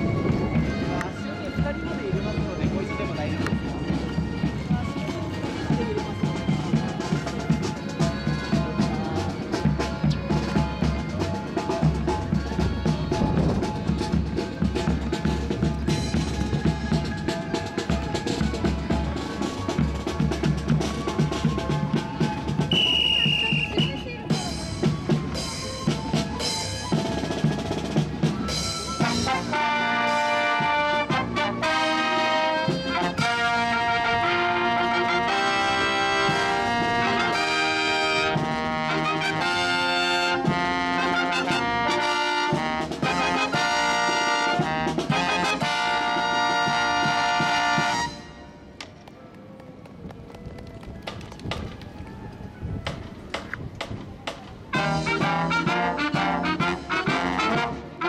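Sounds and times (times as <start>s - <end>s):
marching drums and percussion: 0.0s - 58.0s
high whistle-like tone: 22.7s - 24.2s
brass playing melody: 28.6s - 48.6s, 54.7s - 58.0s.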